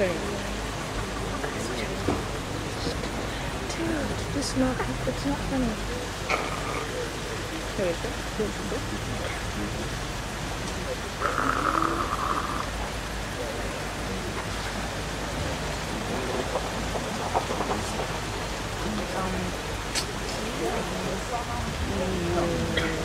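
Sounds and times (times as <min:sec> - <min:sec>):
murmur of distant voices: 0:00.0 - 0:23.0
steady hiss: 0:00.0 - 0:23.0.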